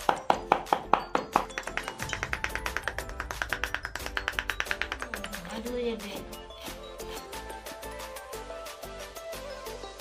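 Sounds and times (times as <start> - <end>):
cleaver chopping on wooden board: 0.0 - 5.5
background music: 0.0 - 10.0.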